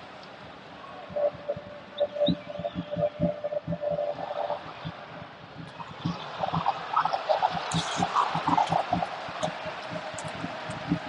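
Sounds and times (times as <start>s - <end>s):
stadium crowd noise: 0.0s - 11.0s
drums beating: 2.4s - 5.0s, 5.6s - 11.0s.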